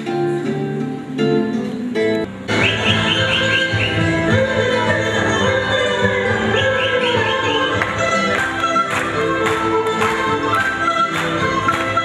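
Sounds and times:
classical guitar playing: 0.0s - 12.0s
folk dance music: 0.0s - 12.0s.

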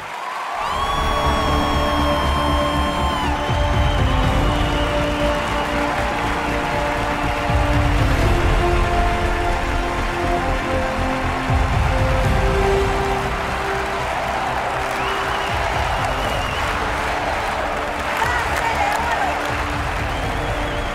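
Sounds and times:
audience applauding and cheering: 0.0s - 20.9s
loud music: 0.6s - 20.9s.

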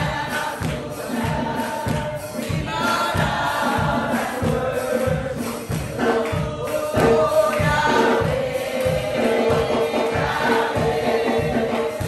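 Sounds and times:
congregation singing gospel: 0.0s - 12.0s.

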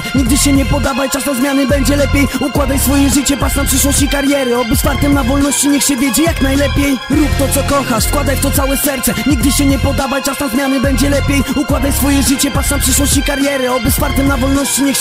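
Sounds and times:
rapped vocals: 0.0s - 15.0s
deep repeating bass beat: 0.2s - 0.9s, 1.7s - 5.5s, 6.3s - 10.1s, 10.8s - 14.6s.

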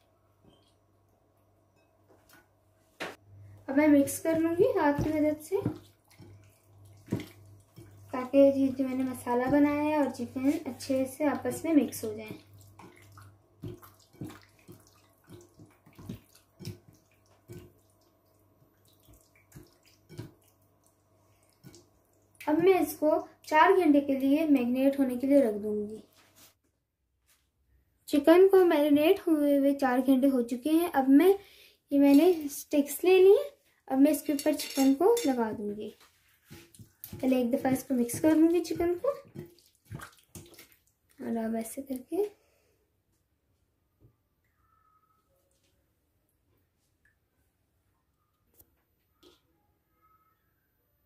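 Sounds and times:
wet squelches of chicken in marinade: 4.2s - 22.6s, 35.8s - 42.6s
hand squelching in marinade: 36.0s - 41.2s.

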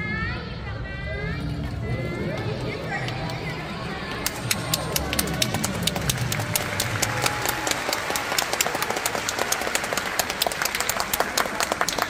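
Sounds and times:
audience applauding: 4.0s - 12.0s.

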